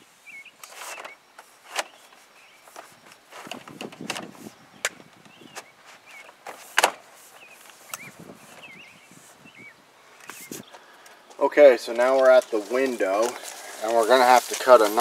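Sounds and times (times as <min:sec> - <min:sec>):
rustling: 0:00.1 - 0:04.6, 0:05.2 - 0:09.4, 0:10.1 - 0:15.0
plastic siding clicking and snapping: 0:00.6 - 0:08.1.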